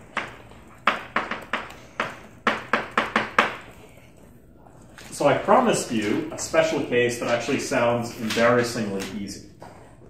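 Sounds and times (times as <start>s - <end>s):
chalk tapping and scratching on blackboard: 0.1s - 4.0s.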